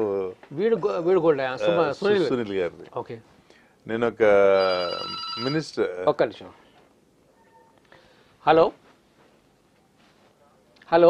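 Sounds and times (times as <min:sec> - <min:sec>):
faint high electronic tones: 0:04.6 - 0:05.8.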